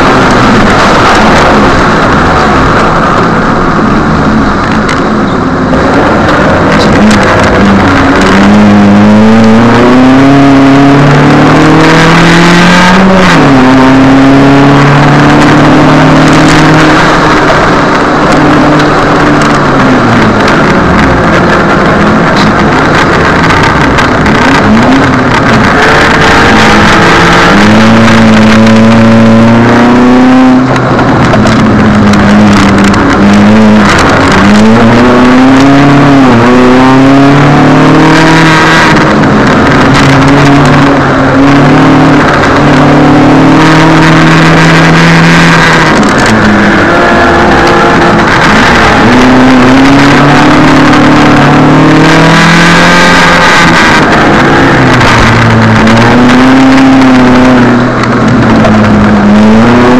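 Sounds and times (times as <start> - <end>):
car engine revving: 0.0 - 59.9
road and wet tyre noise: 0.0 - 59.9.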